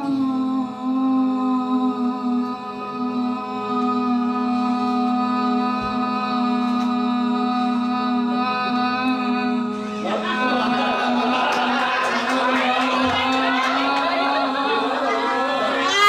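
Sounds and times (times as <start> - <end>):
woman singing a long note: 0.0 - 15.2, 15.8 - 16.0.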